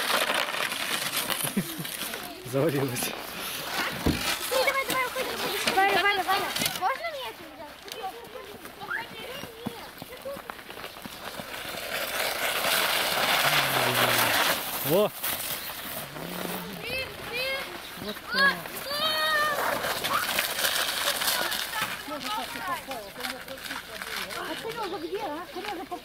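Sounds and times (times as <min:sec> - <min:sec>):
sled scraping down snow: 0:00.0 - 0:26.0
children chattering and calling: 0:01.6 - 0:11.6, 0:12.9 - 0:15.1, 0:15.8 - 0:26.0.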